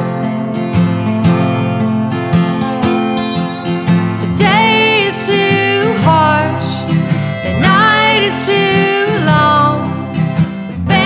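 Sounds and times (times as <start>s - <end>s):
accordion holding chords: 0.0s - 11.0s
strummed acoustic guitar: 0.0s - 11.0s
lap steel guitar sliding: 1.8s - 11.0s.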